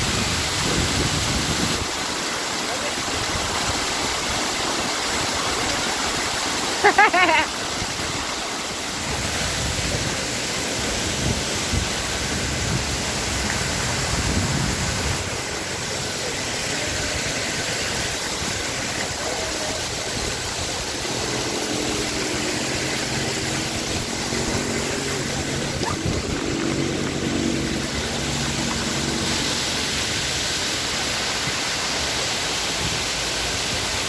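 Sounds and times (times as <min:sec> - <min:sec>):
waterfall pouring over rocks: 0:00.0 - 0:34.0.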